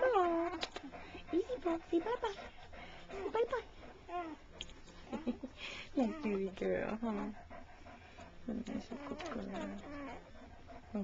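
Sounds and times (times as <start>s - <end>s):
woman speaking softly: 0.0s - 3.8s, 5.9s - 7.4s, 8.4s - 10.2s
dog whining: 3.1s - 5.4s, 8.8s - 10.5s.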